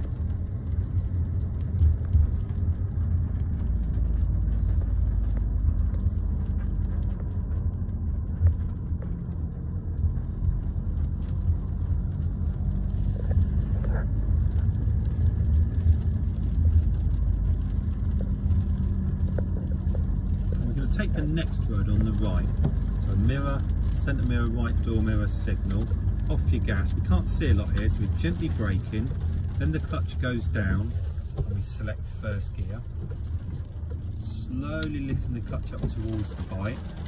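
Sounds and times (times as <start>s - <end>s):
car engine and tyre rumble: 0.0s - 37.0s.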